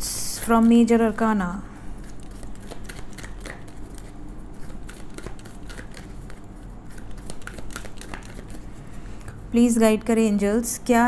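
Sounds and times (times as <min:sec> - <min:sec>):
cards shuffling: 0:02.0 - 0:09.4.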